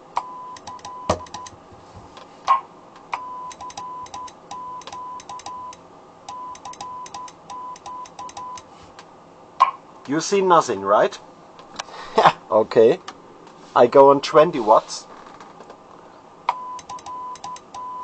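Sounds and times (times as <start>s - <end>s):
keying clicks: 0.5s - 1.5s, 3.5s - 8.6s, 16.8s - 17.9s
loud knocks: 1.1s - 1.7s
morse code tone: 3.2s - 8.6s, 16.6s - 18.0s.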